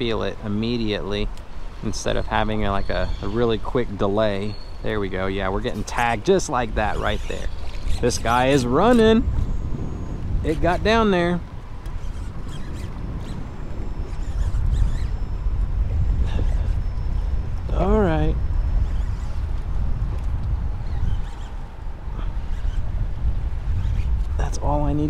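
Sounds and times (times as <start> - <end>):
wind rumble on microphone: 0.0 - 25.0.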